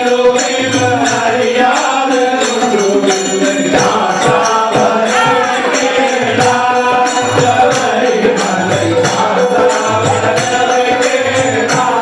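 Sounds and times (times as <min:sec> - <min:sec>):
men singing devotional song: 0:00.0 - 0:12.0
steady percussive beat: 0:00.0 - 0:12.0.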